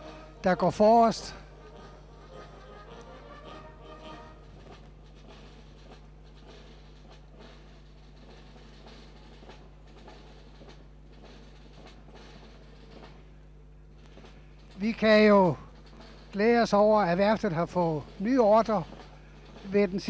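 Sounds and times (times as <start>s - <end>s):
distant brass band march: 0.0s - 20.0s
drums: 0.0s - 20.0s.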